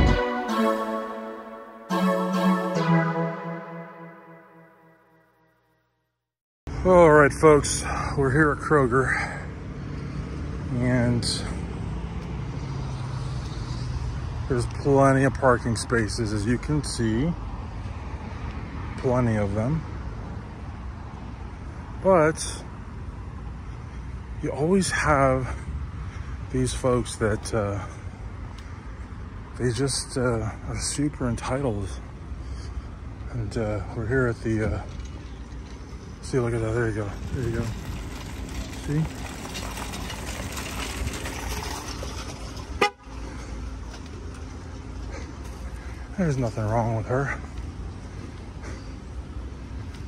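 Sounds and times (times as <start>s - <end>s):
low rumble of traffic: 6.7s - 50.0s
parking lot background noise: 6.7s - 50.0s.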